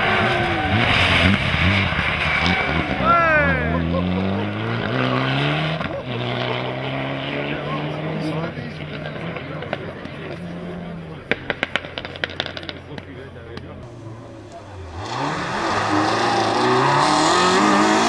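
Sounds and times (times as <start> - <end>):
rally car engine accelerating: 0.0 - 18.0.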